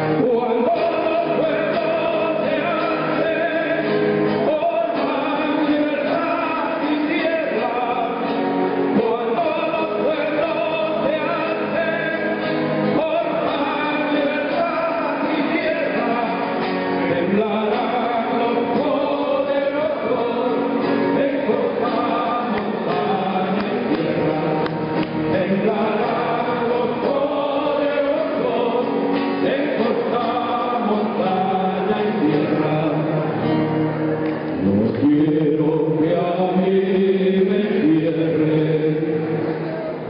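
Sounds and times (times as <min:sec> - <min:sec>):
men singing together: 0:00.0 - 0:33.7, 0:34.5 - 0:40.0
acoustic guitars: 0:00.0 - 0:40.0.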